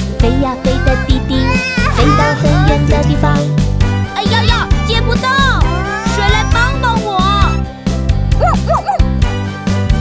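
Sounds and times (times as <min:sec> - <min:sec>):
children's music with steady beat: 0:00.0 - 0:10.0
cartoon puppy yipping: 0:08.4 - 0:09.0.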